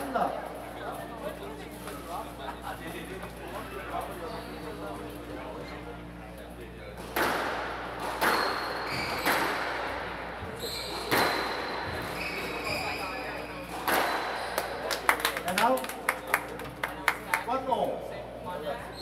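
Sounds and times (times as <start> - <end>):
squash ball hits echoing: 7.0 - 14.9
shoe squeaks on wooden floor: 8.2 - 9.4, 10.5 - 13.7.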